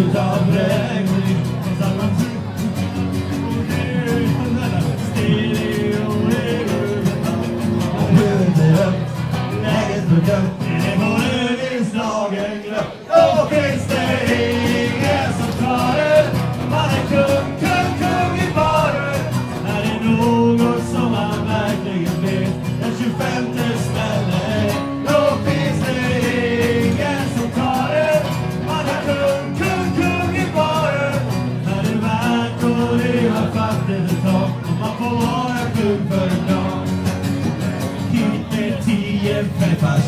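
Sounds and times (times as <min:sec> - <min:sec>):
guitar accompaniment: 0:00.0 - 0:40.0
man singing: 0:00.0 - 0:40.0.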